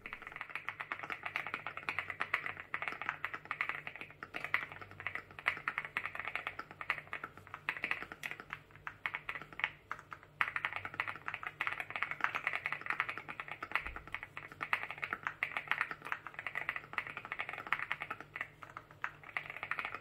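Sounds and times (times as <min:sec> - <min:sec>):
mechanical keyboard typing: 0:00.0 - 0:20.0.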